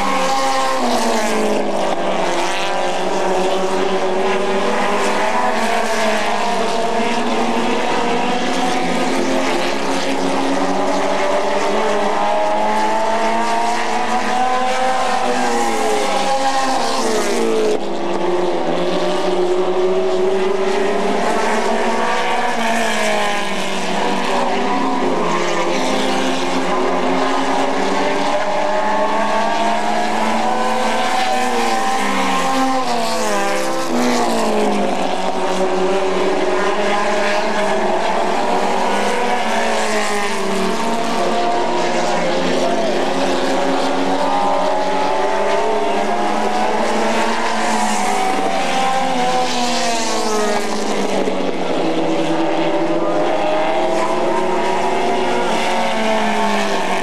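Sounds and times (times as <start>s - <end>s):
race car engines accelerating: 0.0s - 57.0s.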